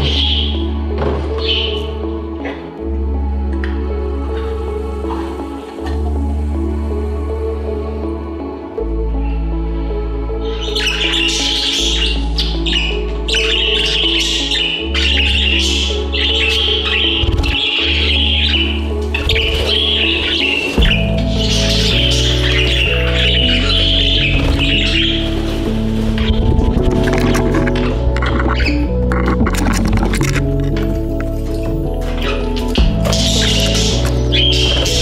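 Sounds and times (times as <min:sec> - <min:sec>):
budgies chirping: 0:00.0 - 0:00.7, 0:01.4 - 0:02.0, 0:10.4 - 0:35.0
background music low notes: 0:00.0 - 0:35.0.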